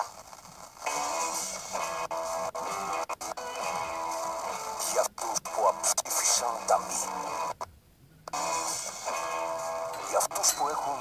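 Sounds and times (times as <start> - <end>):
music through tv speaker: 0.8 - 7.7, 8.3 - 11.0.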